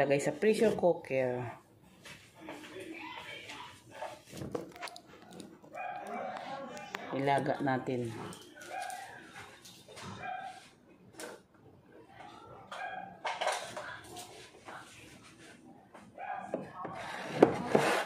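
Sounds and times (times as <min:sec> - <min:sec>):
pots and utensils moved on counter: 0:13.2 - 0:13.9.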